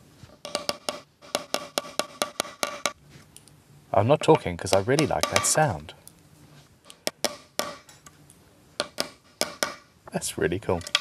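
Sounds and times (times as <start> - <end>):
hammer tapping metal punch: 0.4 - 3.0, 4.2 - 5.7.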